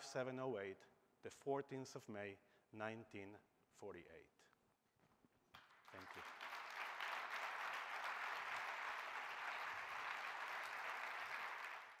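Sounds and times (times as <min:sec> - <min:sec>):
audience applauding: 0:05.8 - 0:12.0.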